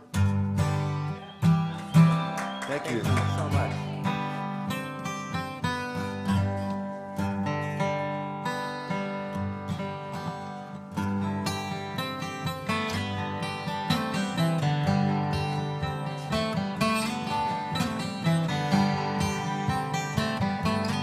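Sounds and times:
acoustic guitars playing folk music: 0:00.0 - 0:21.0.

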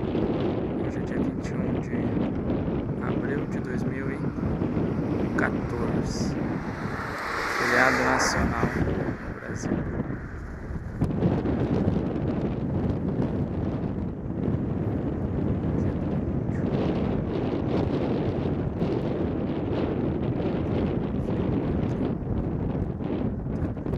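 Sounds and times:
wind buffeting microphone: 0:00.0 - 0:23.9.

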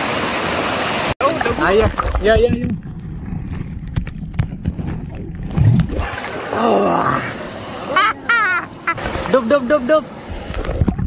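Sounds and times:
rushing water: 0:00.0 - 0:11.0
man laughing: 0:07.9 - 0:09.0.

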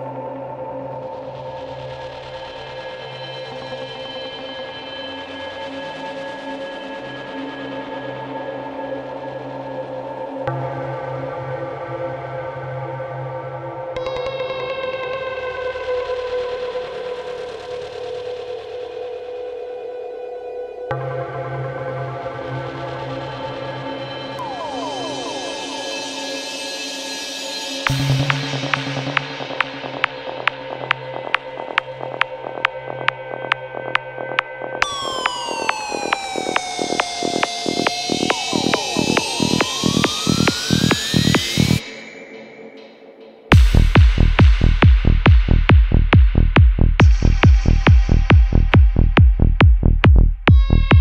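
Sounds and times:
psytrance music: 0:00.0 - 0:51.0
sustained synthesizer drone: 0:00.0 - 0:51.0
synth tone sweeping in pitch: 0:24.4 - 0:26.5, 0:27.9 - 0:44.8.

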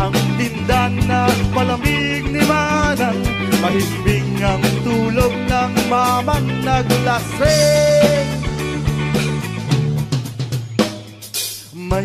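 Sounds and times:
drum kit with snare and cymbals: 0:00.0 - 0:12.0
rock song: 0:00.0 - 0:12.0
sustained bass and guitar tones: 0:00.0 - 0:12.0.

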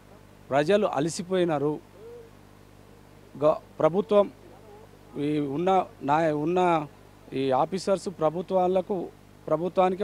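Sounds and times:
man speaking: 0:03.4 - 0:10.0.

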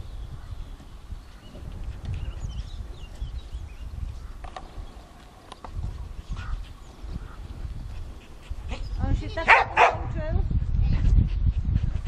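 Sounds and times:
dog yelping and barking: 0:09.5 - 0:10.0.

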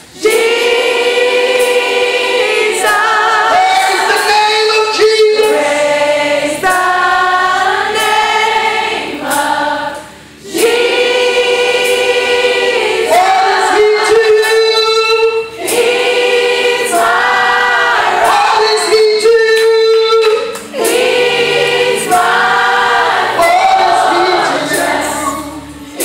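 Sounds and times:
congregation singing gospel: 0:00.0 - 0:26.0.

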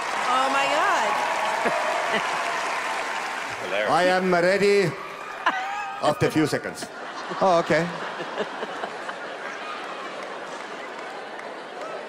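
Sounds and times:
audience applauding: 0:00.0 - 0:06.9, 0:07.7 - 0:12.0.

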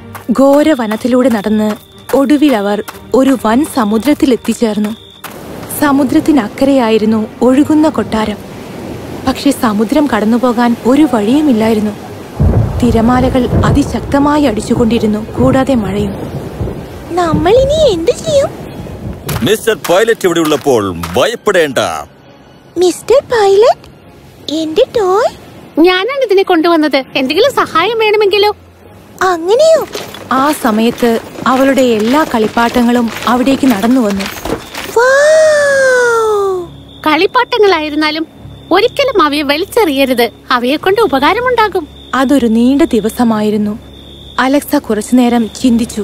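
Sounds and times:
steady rain: 0:05.2 - 0:22.2, 0:23.3 - 0:36.7
thunder rumbling: 0:05.4 - 0:20.6, 0:29.2 - 0:36.2
girl exclaiming woah: 0:35.0 - 0:36.7.

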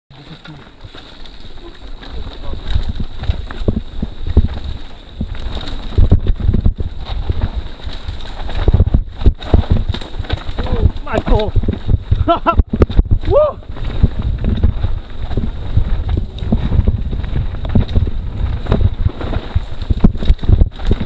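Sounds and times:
bike knocking and rattling: 0:00.1 - 0:21.0
wind buffeting microphone: 0:01.3 - 0:21.0.

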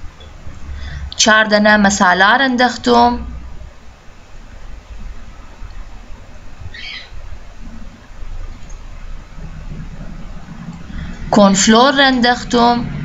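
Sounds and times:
low background rumble: 0:00.0 - 0:13.0
high-pitched chirp: 0:06.7 - 0:07.2.

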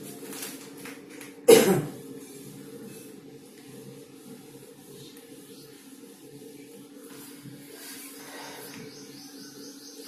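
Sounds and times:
man coughing: 0:01.5 - 0:02.0.

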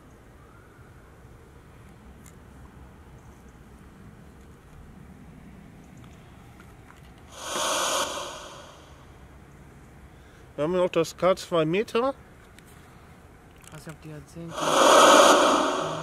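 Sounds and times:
faint outdoor background: 0:00.0 - 0:16.0
loud breath out: 0:07.3 - 0:09.0, 0:14.5 - 0:16.0.

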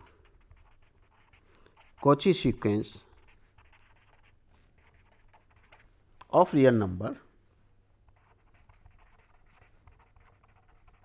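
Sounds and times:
pen scratching on paper: 0:00.0 - 0:02.4, 0:03.0 - 0:05.9, 0:08.1 - 0:11.0.

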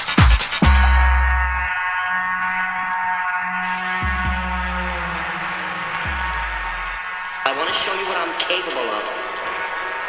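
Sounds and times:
house music synth chord: 0:00.0 - 0:10.0
deep bass note swooping down: 0:00.6 - 0:08.2.

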